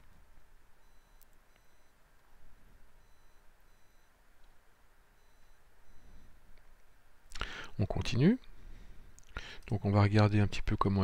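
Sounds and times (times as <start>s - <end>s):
faint room hiss: 0.0s - 11.0s
faint high-pitched electronic beeps: 0.8s - 4.2s, 5.1s - 6.5s.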